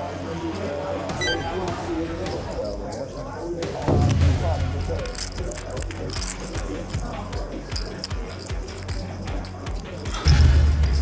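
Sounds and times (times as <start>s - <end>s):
murmur of voices: 0.0s - 11.0s
poker chips clicking: 4.0s - 11.0s.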